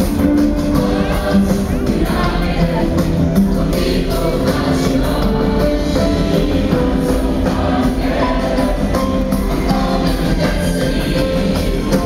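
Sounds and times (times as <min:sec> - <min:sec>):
choir singing with accompaniment: 0:00.0 - 0:12.0.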